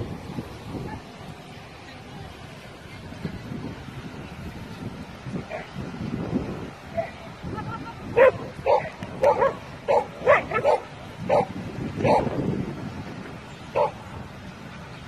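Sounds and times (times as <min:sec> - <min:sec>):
dog barking: 0:08.2 - 0:12.3.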